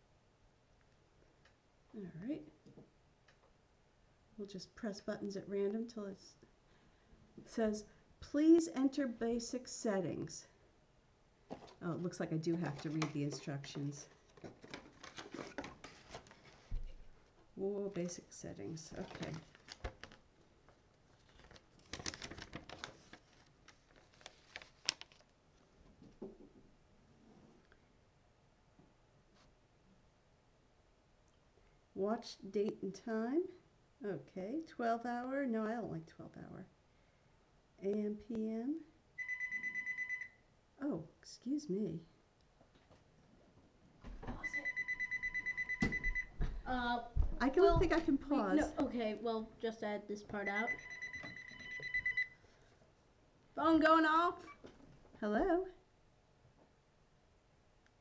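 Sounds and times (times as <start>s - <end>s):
telephone ringing: 39.2s - 40.4s, 44.4s - 46.3s, 50.4s - 52.4s.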